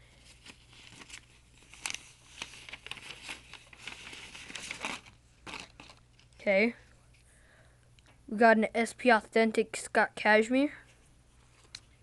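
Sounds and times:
paper wrapping crinkling and tearing: 0:00.2 - 0:06.5.

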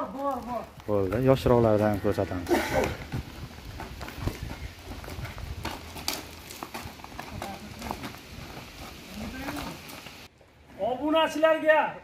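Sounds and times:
cow hooves crunching on gravel: 0:00.0 - 0:10.3.

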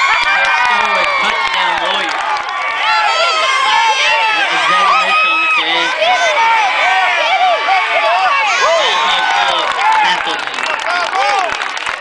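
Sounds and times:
people clapping: 0:00.0 - 0:12.0
spectators shouting and cheering: 0:00.0 - 0:12.0.

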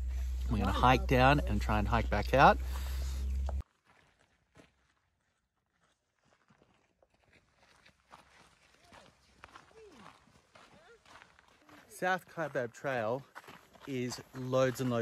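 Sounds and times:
footsteps on dirt path: 0:00.0 - 0:15.0.

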